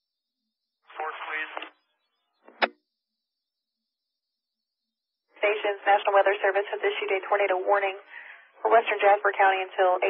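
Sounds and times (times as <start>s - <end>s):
voice over two-way radio: 0.9s - 1.7s.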